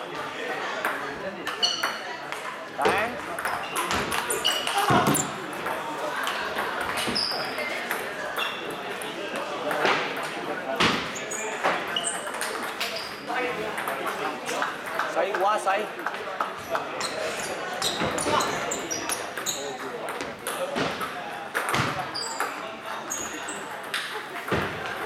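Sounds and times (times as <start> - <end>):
table tennis balls clicking: 0.8 - 10.5, 11.6 - 13.0, 13.6 - 15.4, 17.9 - 25.0.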